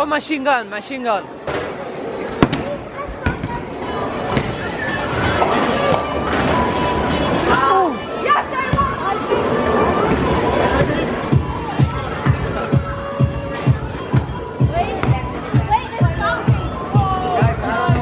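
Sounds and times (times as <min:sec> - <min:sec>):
background music: 0:09.3 - 0:18.0.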